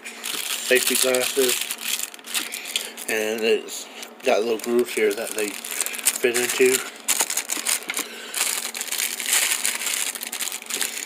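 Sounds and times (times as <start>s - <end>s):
plastic bags crinkling: 0.2s - 11.0s.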